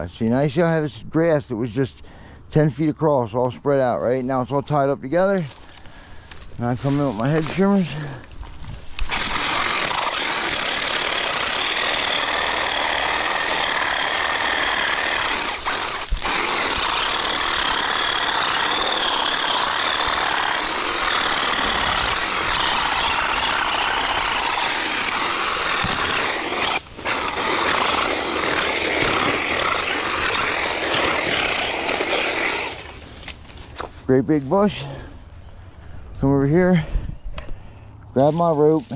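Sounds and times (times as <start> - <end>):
hedge trimmer cutting grass: 5.2 - 35.1.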